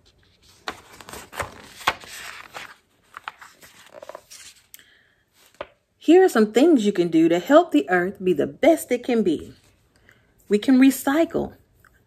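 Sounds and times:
paper page rustling: 0:00.0 - 0:04.7, 0:05.4 - 0:05.8.

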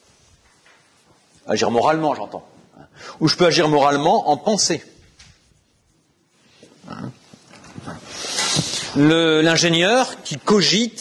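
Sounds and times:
man drawing breath: 0:02.9 - 0:03.2.

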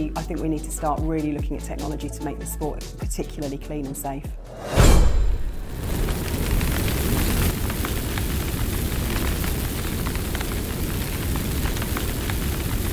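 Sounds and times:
deep rumble: 0:04.5 - 0:12.9
fire crackling: 0:04.6 - 0:12.9
rush of flames: 0:04.6 - 0:12.9.

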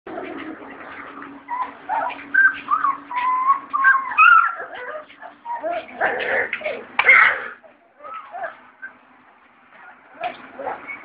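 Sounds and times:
puppies whining and yelping: 0:00.1 - 0:11.0
steady low hum: 0:00.1 - 0:11.0.

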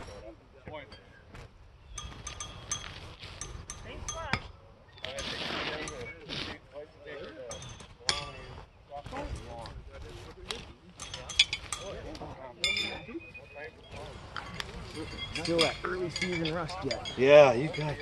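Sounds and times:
metal horseshoes clinking: 0:00.0 - 0:06.3, 0:07.2 - 0:18.0
low voices talking: 0:05.0 - 0:18.0.

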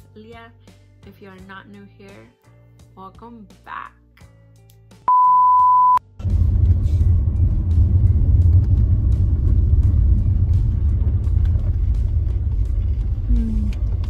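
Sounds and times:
high test-tone beep: 0:05.1 - 0:06.0
car engine rumble inside cabin: 0:06.2 - 0:14.0.

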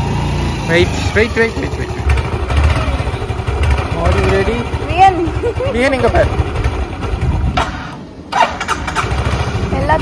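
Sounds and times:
motor scooter engine rumble: 0:00.0 - 0:10.0.

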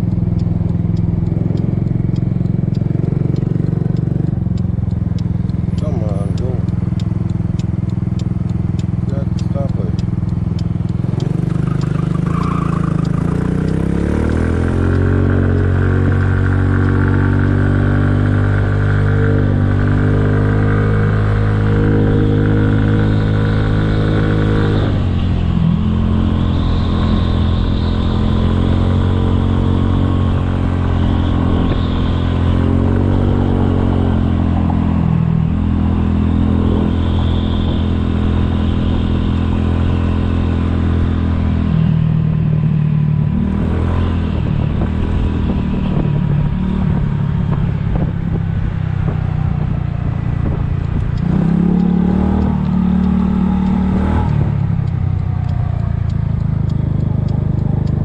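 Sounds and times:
scooter engine running: 0:00.0 - 0:35.6.

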